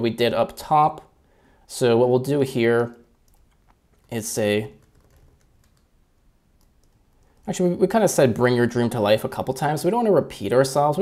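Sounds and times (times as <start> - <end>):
keyboard typing: 2.9 - 5.9, 6.6 - 7.5.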